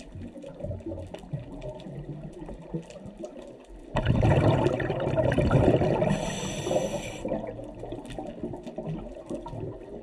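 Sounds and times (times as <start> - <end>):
faint bubbling and crackle: 0.0 - 10.0
regulator breathing hiss: 6.1 - 7.4.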